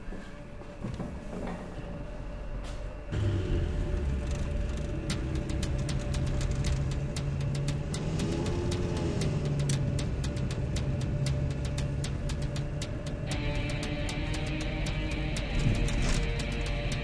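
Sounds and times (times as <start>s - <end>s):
car engine rumbling: 3.1s - 17.0s
sharp irregular ticks: 4.0s - 17.0s.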